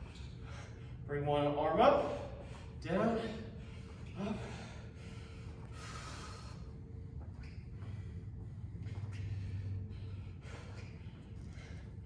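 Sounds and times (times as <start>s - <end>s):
man breathing hard: 0.0s - 1.1s, 2.0s - 7.0s, 7.8s - 12.0s
low steady hum: 0.0s - 12.0s.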